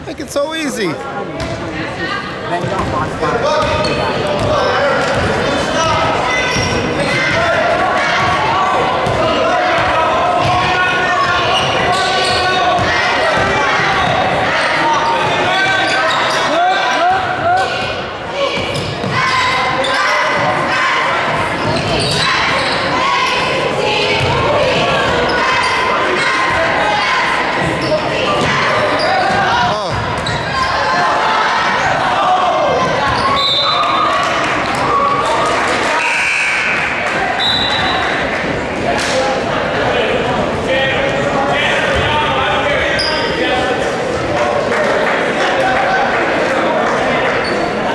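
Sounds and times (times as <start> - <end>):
echoing crowd voices: 0.0 - 47.9.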